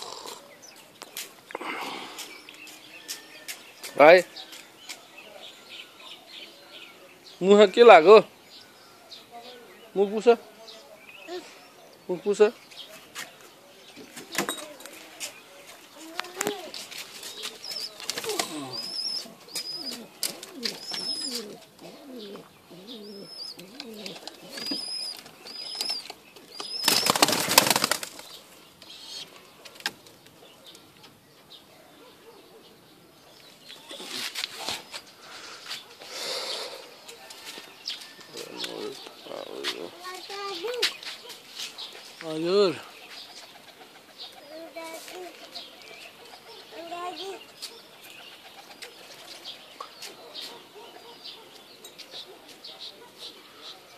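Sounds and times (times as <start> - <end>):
pigeons cooing: 0.0 - 0.8, 15.9 - 31.0, 33.8 - 37.3, 38.3 - 53.9
wings flapping: 16.3 - 21.4, 23.8 - 28.4.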